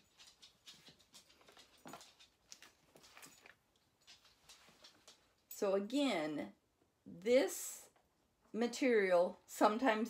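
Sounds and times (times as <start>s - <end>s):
faint small ticks and rustles: 0.0s - 5.7s.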